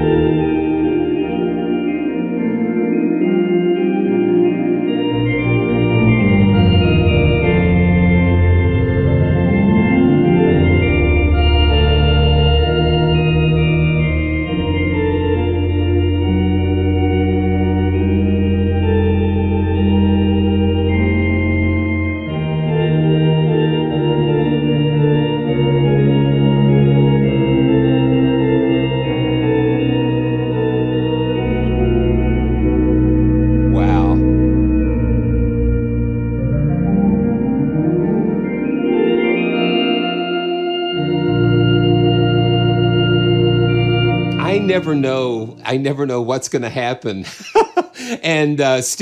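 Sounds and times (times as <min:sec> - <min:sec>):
organ playing held chords: 0:00.0 - 0:49.0.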